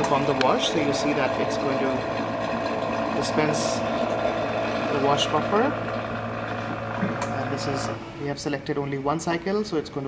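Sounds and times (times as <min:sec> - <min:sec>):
laboratory instrument humming: 0:00.0 - 0:09.0.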